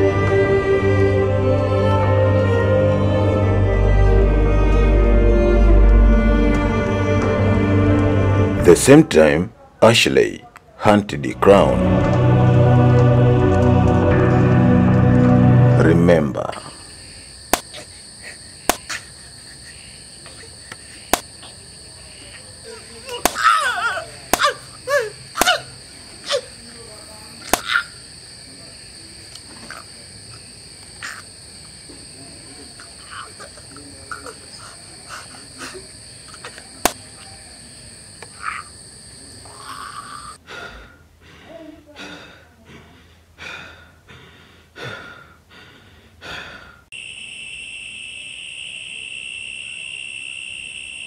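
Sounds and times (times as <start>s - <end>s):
crickets chirring: 15.8s - 40.4s, 46.9s - 51.0s
harsh voiced cries: 22.7s - 26.6s.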